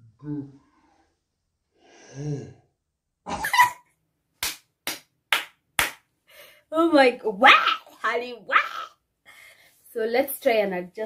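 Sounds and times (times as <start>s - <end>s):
person sighing: 1.9s - 2.6s
hands clapping: 4.4s - 6.1s.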